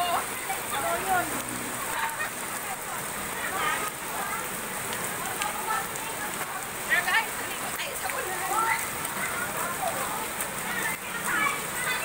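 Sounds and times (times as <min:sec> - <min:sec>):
rain falling on wet street: 0:00.0 - 0:12.0.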